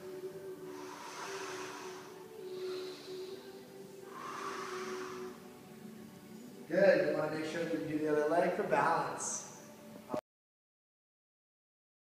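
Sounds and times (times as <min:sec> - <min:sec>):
man breathing: 0:00.0 - 0:06.0
faint background music: 0:00.0 - 0:10.2.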